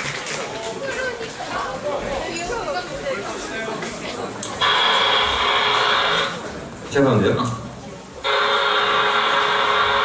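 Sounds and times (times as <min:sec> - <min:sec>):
audience chatter: 0:00.0 - 0:10.0.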